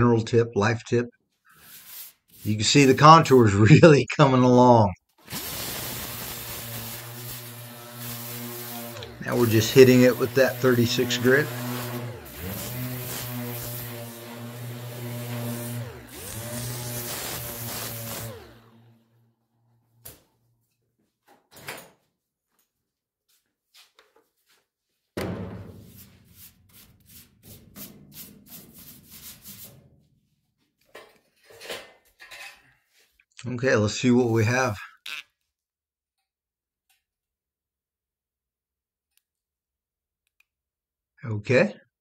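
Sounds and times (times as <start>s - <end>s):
irregular rubbing and handling noise: 1.2s - 3.5s, 25.8s - 33.3s
orbital sander on sheet metal: 1.6s - 3.5s, 5.2s - 19.0s.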